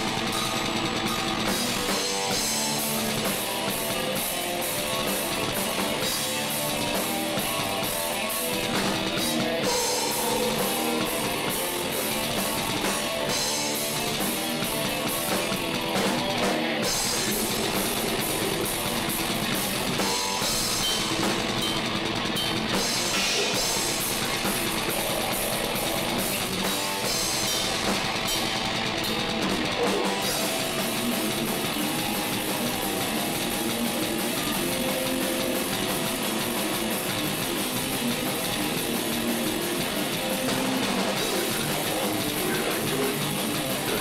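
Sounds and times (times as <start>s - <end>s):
drum kit played hard: 0.0s - 44.0s
guitars: 0.0s - 44.0s.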